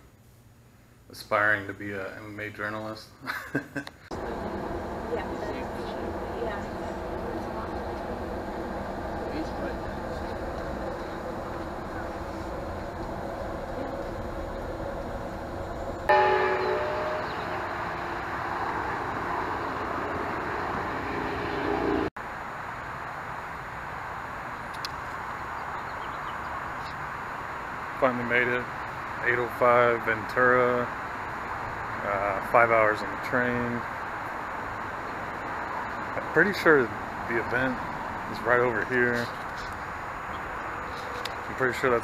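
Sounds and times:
loud held tones: 0:04.1 - 0:22.1
train car rumble and hum: 0:04.1 - 0:22.1, 0:27.4 - 0:42.0
rushing noise: 0:04.1 - 0:25.8.

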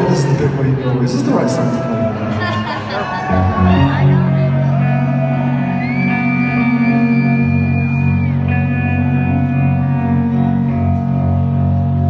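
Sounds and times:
amplified electric guitar: 0:00.0 - 0:12.0.

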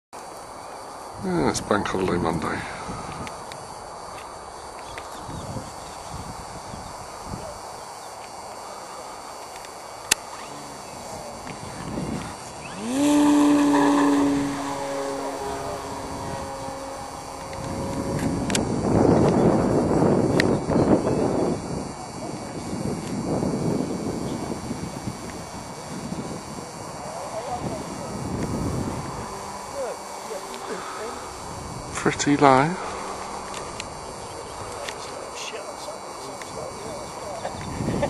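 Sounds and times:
model plane electric motor whine: 0:00.2 - 0:38.0
rushing noise: 0:12.5 - 0:20.2, 0:30.3 - 0:34.9.

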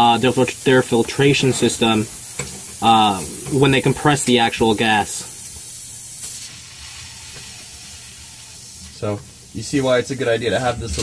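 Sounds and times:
gas hissing from valve: 0:00.0 - 0:11.0.

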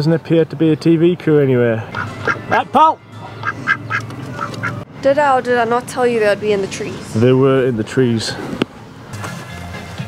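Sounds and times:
ducks giving short soft calls: 0:01.9 - 0:02.6.

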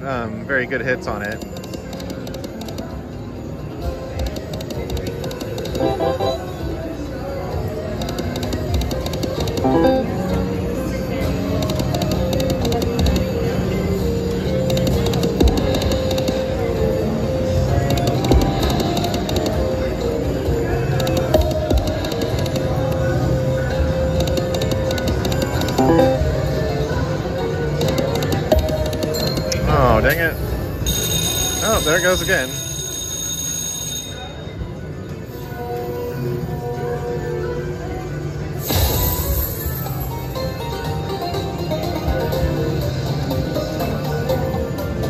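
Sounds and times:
casino chatter: 0:00.3 - 0:45.0
slot machine music and tones: 0:01.1 - 0:07.1, 0:07.7 - 0:34.4, 0:38.6 - 0:45.0.

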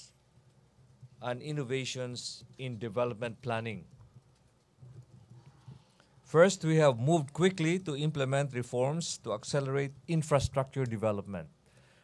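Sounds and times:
microphone stems being handled: 0:02.5 - 0:06.0.

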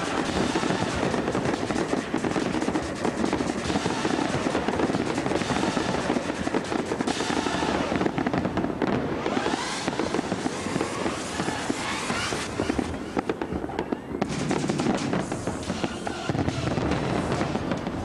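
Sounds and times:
fireworks bursting and crackling: 0:00.0 - 0:18.0.

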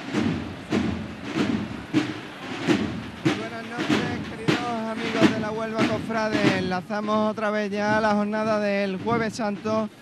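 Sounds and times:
drums striking slow beat: 0:00.0 - 0:10.0.

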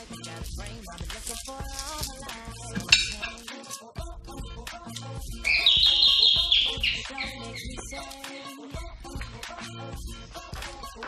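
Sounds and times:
background music: 0:00.0 - 0:11.0
warbling electronic chime: 0:05.5 - 0:07.7.

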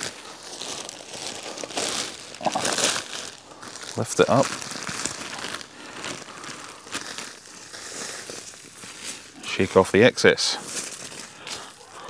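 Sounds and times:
plastic sheet crinkling: 0:00.0 - 0:09.4, 0:10.6 - 0:12.0.

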